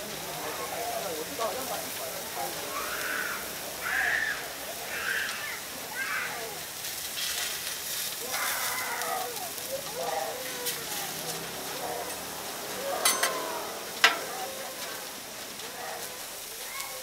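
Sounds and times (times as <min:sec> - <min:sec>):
food sizzling on a griddle: 0:00.0 - 0:17.0
metal spatula scraping griddle: 0:10.1 - 0:16.5.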